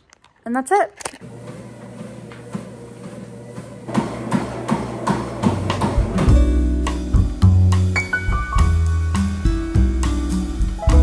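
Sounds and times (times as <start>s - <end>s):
treadmill motor hum: 1.2s - 6.7s.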